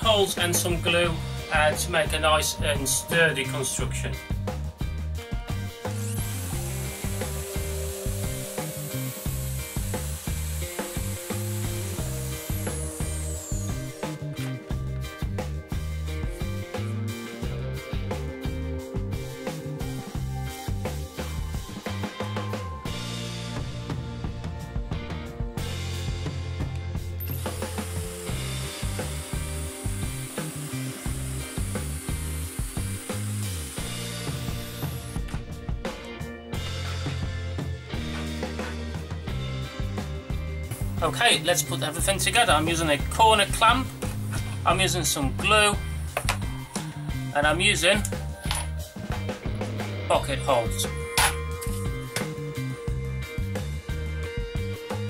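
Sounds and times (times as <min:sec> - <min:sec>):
background music with steady beat: 0:00.0 - 0:55.0
power drill boring into wood: 0:05.8 - 0:14.2, 0:27.2 - 0:35.4.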